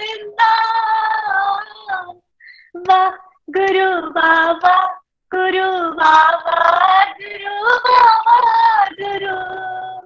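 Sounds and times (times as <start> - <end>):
woman singing unaccompanied: 0.0 - 2.2, 2.8 - 10.0.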